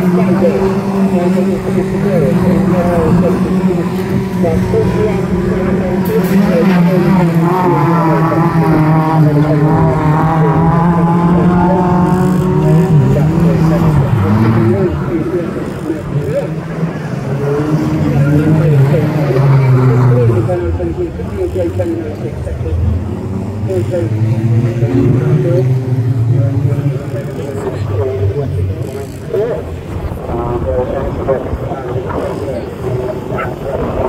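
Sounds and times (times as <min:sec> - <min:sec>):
racing car engines: 0:00.0 - 0:34.0.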